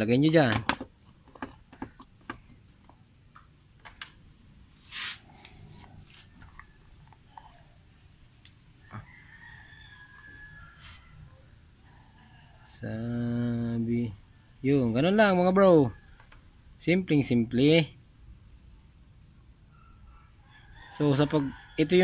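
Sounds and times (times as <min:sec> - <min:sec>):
rustling scrape: 0:04.8 - 0:06.4, 0:10.7 - 0:11.1.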